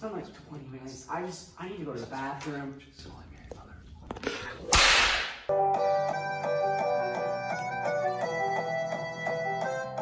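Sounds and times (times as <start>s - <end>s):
sharp whip-like crack: 4.7s - 5.5s
keyboard music: 5.5s - 10.0s.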